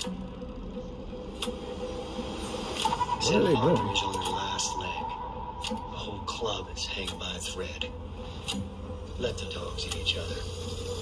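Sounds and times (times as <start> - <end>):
low held drone: 0.0 - 11.0
high held tone: 2.8 - 7.8.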